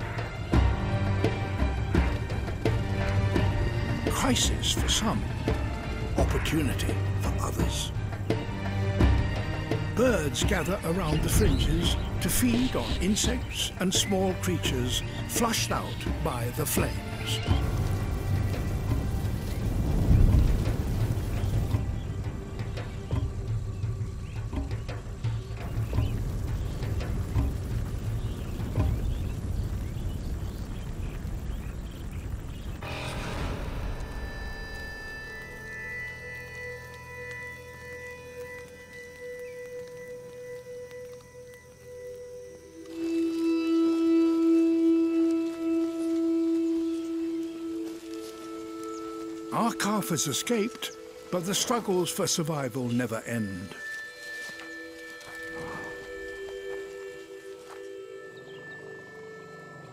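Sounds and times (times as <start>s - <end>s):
music with long held notes: 0.0s - 30.1s, 32.8s - 59.9s
grass fire roaring and crackling: 0.0s - 59.9s.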